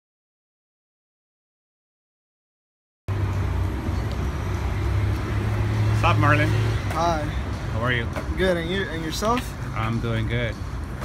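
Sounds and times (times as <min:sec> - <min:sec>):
low rumble of road traffic: 0:03.1 - 0:11.0.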